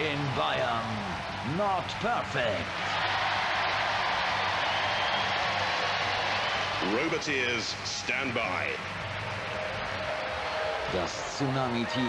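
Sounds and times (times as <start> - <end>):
audience cheering and applauding: 0.0 - 12.0.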